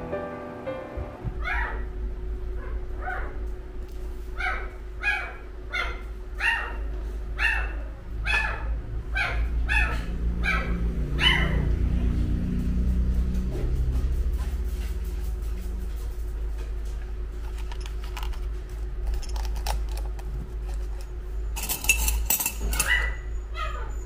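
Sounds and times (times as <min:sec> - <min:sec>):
low rumble: 0:01.2 - 0:21.4
dog yelping: 0:01.4 - 0:01.9, 0:02.6 - 0:03.4, 0:04.4 - 0:11.7, 0:22.6 - 0:24.0.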